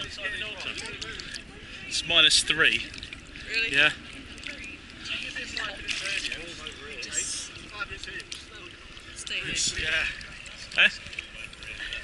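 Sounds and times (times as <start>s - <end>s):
water lapping and splashing: 0.0s - 12.0s.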